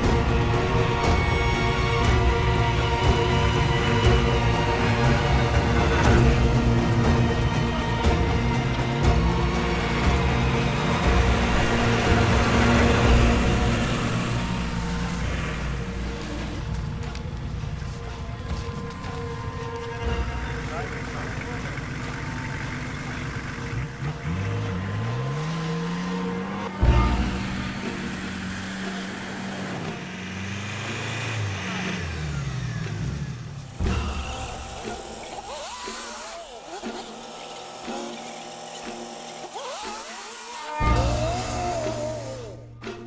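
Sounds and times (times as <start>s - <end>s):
off-road engine revving: 0.0s - 43.0s.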